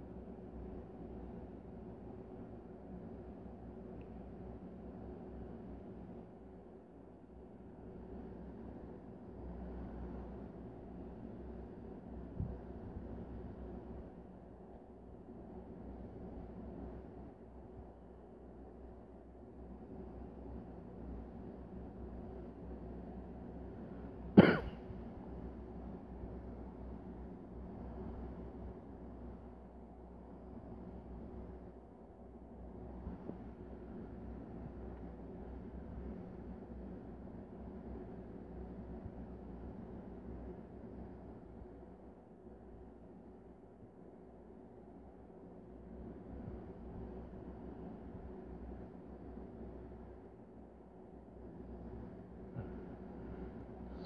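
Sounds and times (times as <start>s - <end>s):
low room hum: 0.0s - 54.0s
man coughing: 24.4s - 24.8s.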